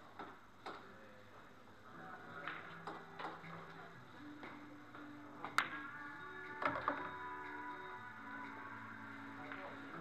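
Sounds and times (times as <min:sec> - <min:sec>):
billiard balls clicking: 0:05.4 - 0:05.8, 0:06.5 - 0:07.2.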